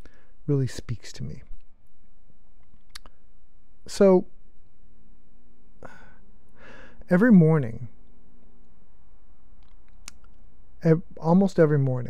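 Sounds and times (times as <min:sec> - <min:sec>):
man breathing: 0:00.0 - 0:00.4, 0:05.8 - 0:07.1.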